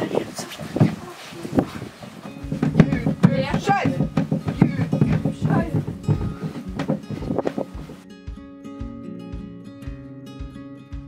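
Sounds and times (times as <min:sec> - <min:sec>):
young women talking and exclaiming: 0:00.0 - 0:02.0
background music: 0:02.1 - 0:11.0.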